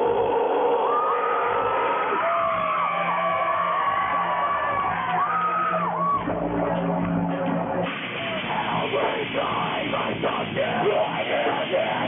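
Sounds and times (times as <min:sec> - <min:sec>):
amplifier drone: 0:00.0 - 0:12.0.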